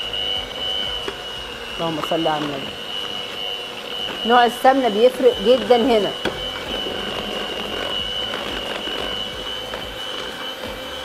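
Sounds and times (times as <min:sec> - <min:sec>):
electric hand mixer whining: 0:00.0 - 0:11.0.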